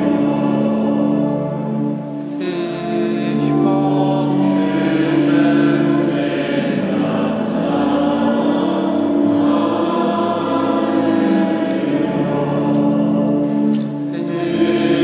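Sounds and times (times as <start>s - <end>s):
choir singing a hymn: 0.0s - 15.0s.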